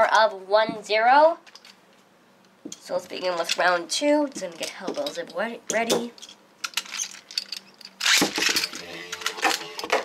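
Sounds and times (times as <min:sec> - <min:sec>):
ripcord rip: 0:08.0 - 0:10.0.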